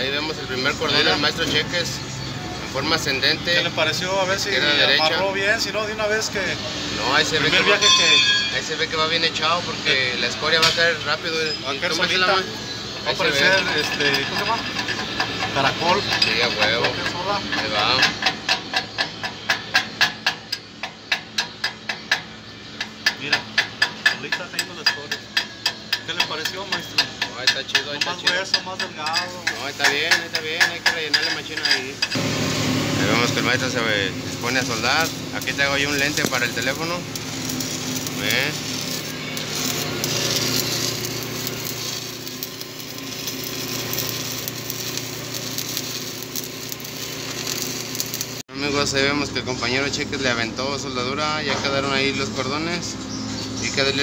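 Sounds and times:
welding arc crackling and sizzling: 0.0s - 50.0s
chipping hammer tapping metal: 13.4s - 32.3s, 33.6s - 48.4s.

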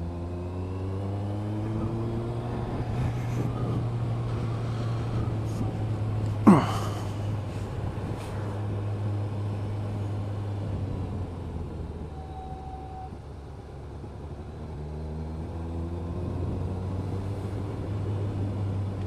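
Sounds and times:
road noise: 0.0s - 19.0s.

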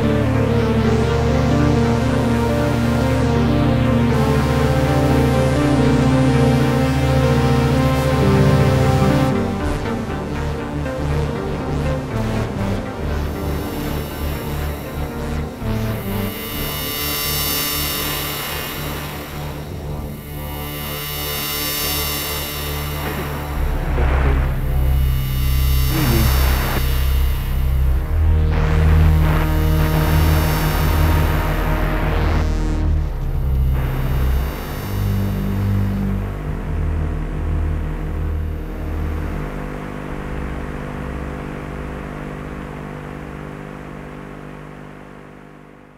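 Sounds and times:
low bass notes: 0.0s - 21.0s, 22.4s - 43.4s
ambient synthesizer music: 0.0s - 43.4s.

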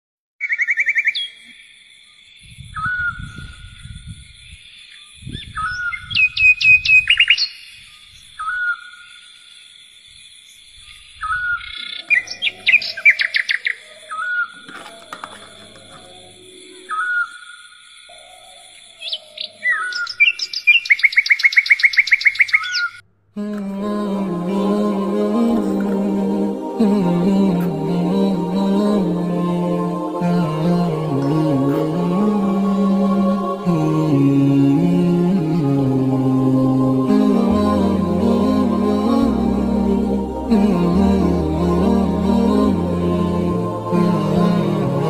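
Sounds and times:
small birds trilling: 10.8s - 23.0s.

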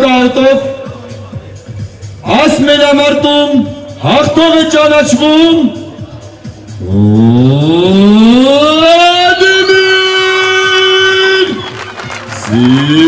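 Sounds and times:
siren wailing: 7.2s - 10.8s.

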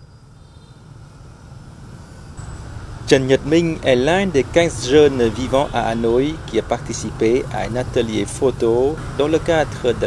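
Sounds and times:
motorbikes and scooters rumbling: 0.9s - 10.0s.

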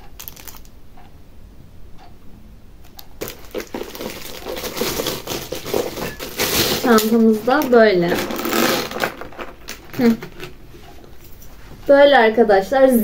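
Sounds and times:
packaging rustling and crinkling: 0.1s - 0.7s, 3.0s - 11.5s.

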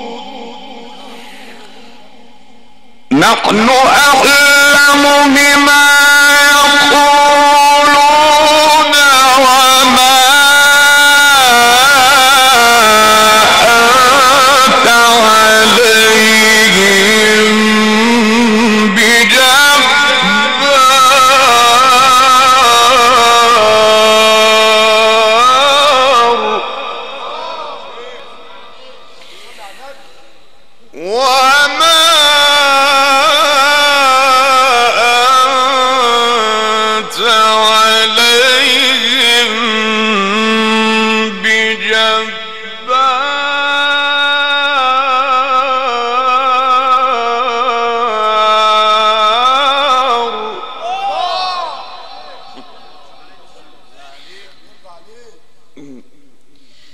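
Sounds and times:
man reciting a long melodic note: 0.0s - 56.9s.

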